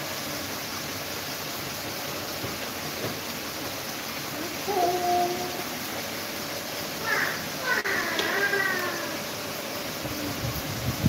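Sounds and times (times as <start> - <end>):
electric fans rushing air: 2.6 - 11.0.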